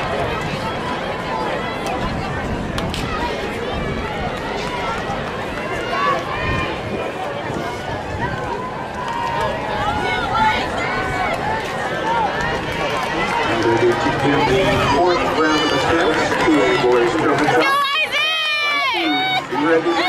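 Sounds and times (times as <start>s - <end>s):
spectators chattering and calling: 0.0s - 20.0s.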